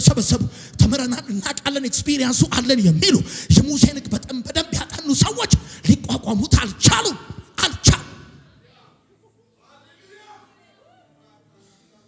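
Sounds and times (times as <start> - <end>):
man preaching loudly: 0.0 - 8.5.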